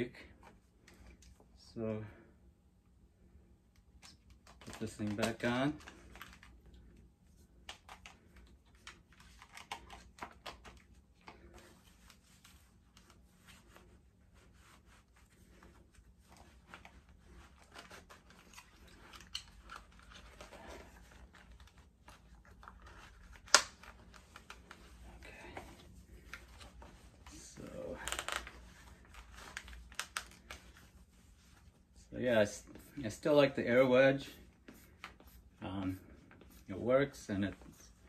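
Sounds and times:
clothing rustle: 4.3s - 38.0s.

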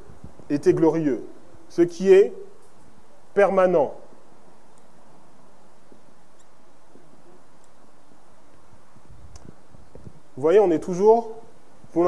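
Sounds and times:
room hum: 0.0s - 12.0s.

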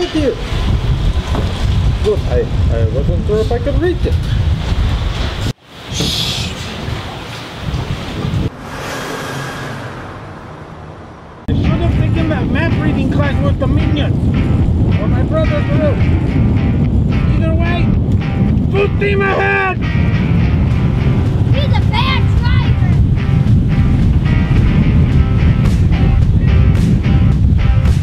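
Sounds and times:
wind buffeting microphone: 0.0s - 10.6s, 11.2s - 28.0s
boat engine rumble: 0.0s - 28.0s.

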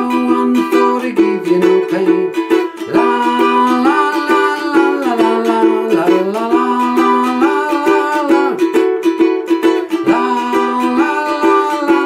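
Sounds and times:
man singing wordless melody: 0.0s - 12.0s
ukulele strumming: 0.0s - 12.0s.

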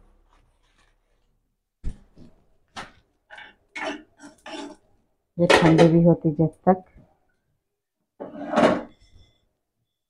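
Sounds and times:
spatula scraping spices: 3.3s - 4.9s.

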